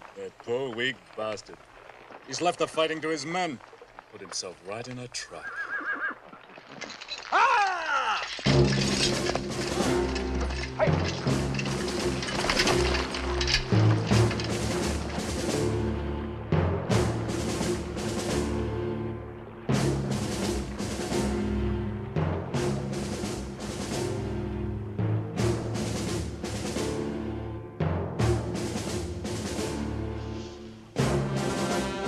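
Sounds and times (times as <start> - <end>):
horse whinnying: 5.2 - 14.4
orchestral film score: 8.0 - 32.0
drum strikes: 8.4 - 18.8, 19.7 - 24.3.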